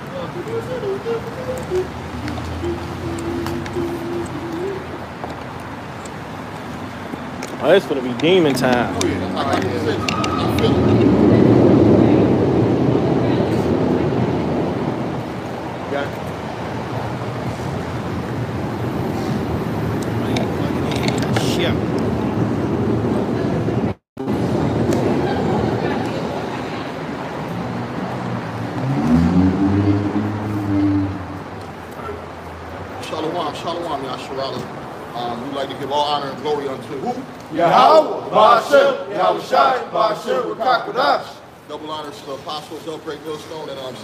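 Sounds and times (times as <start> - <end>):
heavy vehicle engine passing: 0.0 - 35.5
street noise: 0.0 - 44.0.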